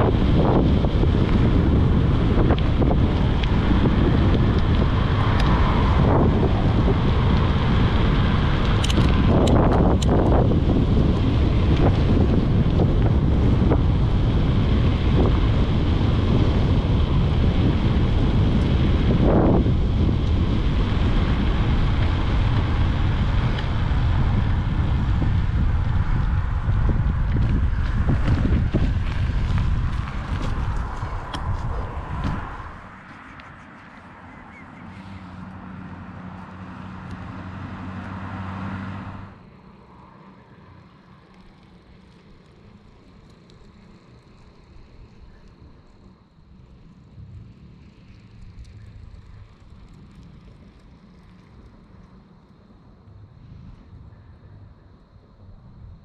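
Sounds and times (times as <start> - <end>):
wind noise on microphone: 0.0 - 39.5
low vehicle hum: 0.0 - 56.0.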